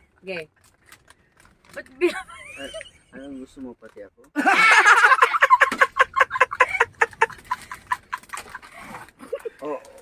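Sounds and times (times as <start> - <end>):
man laughing hard: 4.4 - 7.8.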